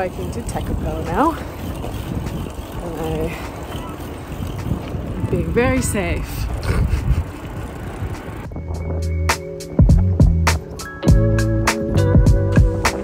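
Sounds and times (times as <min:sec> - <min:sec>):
wind rumbling on microphone: 0:00.0 - 0:10.7.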